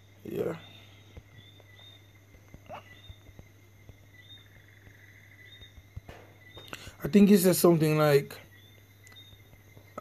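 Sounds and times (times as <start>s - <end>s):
night insects chirping: 0.0s - 10.0s.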